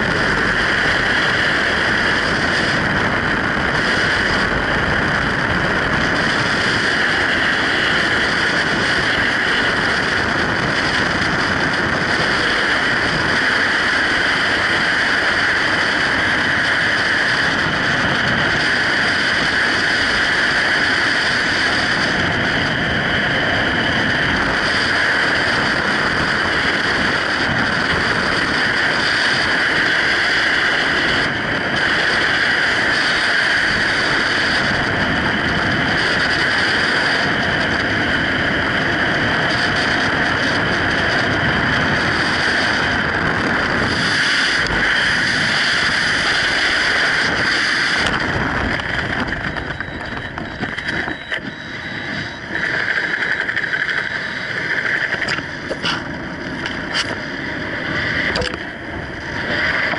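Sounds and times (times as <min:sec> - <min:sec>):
freefall wind buffeting microphone: 0:00.0 - 0:59.9.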